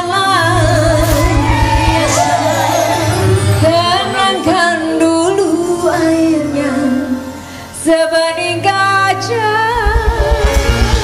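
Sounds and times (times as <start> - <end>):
woman singing into microphone: 0.0 - 10.8
instrumental accompaniment: 0.0 - 11.0.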